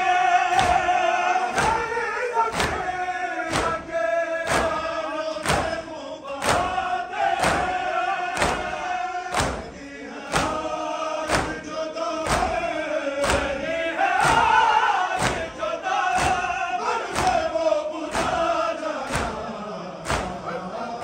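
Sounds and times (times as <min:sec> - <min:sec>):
crowd of men chanting: 0:00.0 - 0:21.0
unison chest-beating slaps: 0:00.4 - 0:20.7.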